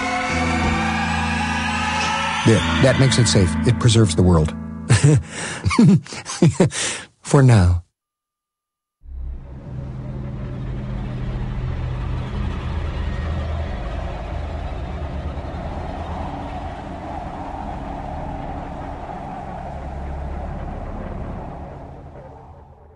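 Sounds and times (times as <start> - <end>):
dark ambient drone: 0.0 - 5.8, 9.1 - 22.9.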